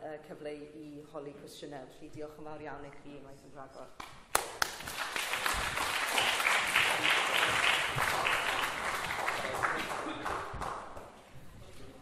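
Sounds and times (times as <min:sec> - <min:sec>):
audience applauding: 0:04.4 - 0:11.1.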